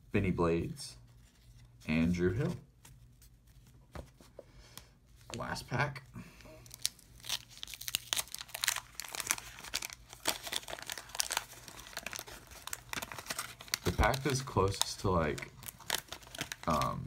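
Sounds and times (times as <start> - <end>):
waxed paper wrapper tearing: 6.6 - 17.0.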